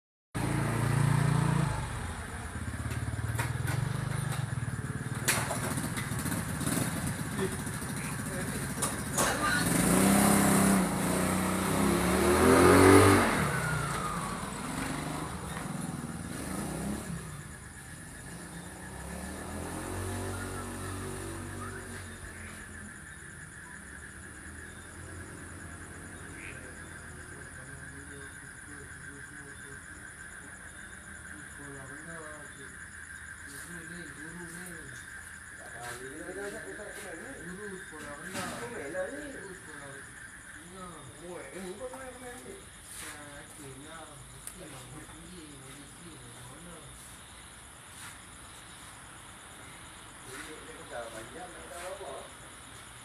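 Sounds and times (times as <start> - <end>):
vehicle engine passing: 0.4 - 47.1, 49.6 - 52.4.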